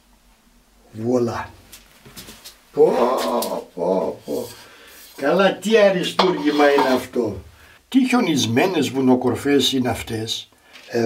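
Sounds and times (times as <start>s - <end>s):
man exclaiming in delight: 2.8s - 4.2s.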